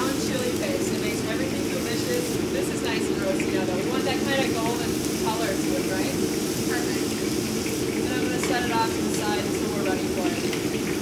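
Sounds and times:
low kitchen roar: 0:00.0 - 0:11.0
sauce sizzling and bubbling in a pan: 0:00.0 - 0:11.0.

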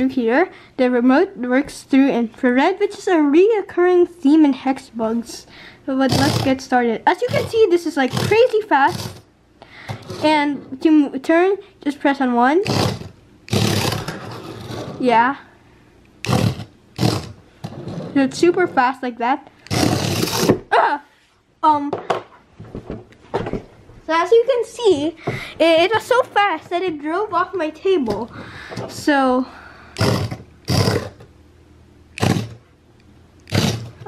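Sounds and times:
toy robot motor whirring: 0:06.0 - 0:09.3, 0:12.6 - 0:14.8, 0:16.2 - 0:17.4, 0:19.6 - 0:20.6, 0:30.0 - 0:31.2, 0:32.2 - 0:32.6, 0:33.4 - 0:34.0
small electric motors whirring: 0:07.2 - 0:09.3, 0:19.6 - 0:20.6, 0:30.0 - 0:31.3, 0:32.2 - 0:32.6.

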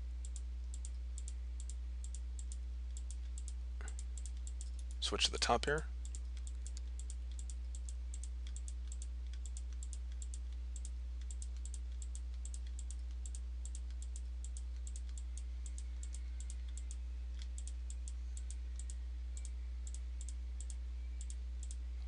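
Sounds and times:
low electrical hum: 0:00.0 - 0:22.0
computer mouse clicking: 0:00.2 - 0:05.0, 0:06.0 - 0:21.8.

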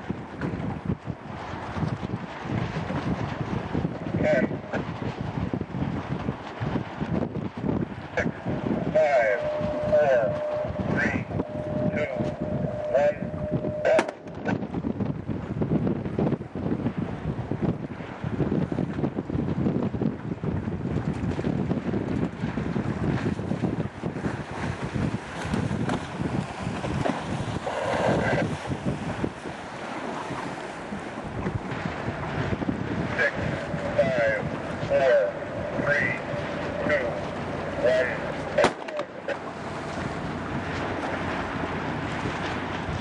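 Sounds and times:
water rushing along hull: 0:00.0 - 0:43.0
wind buffeting microphone: 0:00.0 - 0:43.0
voices: 0:04.2 - 0:04.8, 0:08.1 - 0:14.6, 0:27.8 - 0:28.5, 0:33.0 - 0:39.8.

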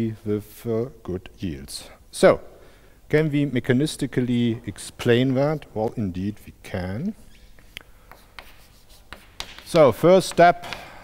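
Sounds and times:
chalk tapping and scraping on blackboard: 0:07.3 - 0:10.9.

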